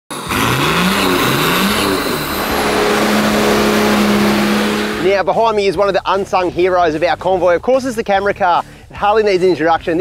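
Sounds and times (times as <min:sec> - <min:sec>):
car engine revving: 0:00.2 - 0:05.3.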